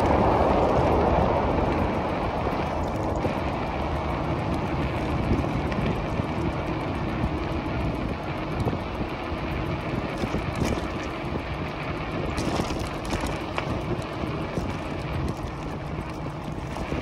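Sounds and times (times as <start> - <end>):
bike tyres rolling on asphalt: 0.0 - 17.0
wind on microphone: 0.0 - 17.0.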